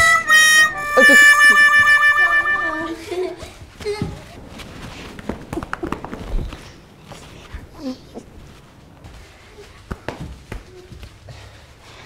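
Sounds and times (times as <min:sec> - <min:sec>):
comic reedy chords: 0:00.0 - 0:03.1.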